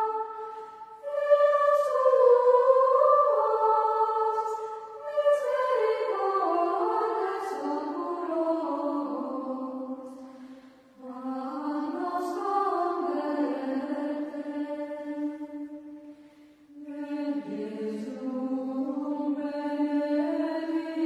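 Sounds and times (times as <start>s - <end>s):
chant singing: 0.0s - 16.1s, 16.7s - 21.0s.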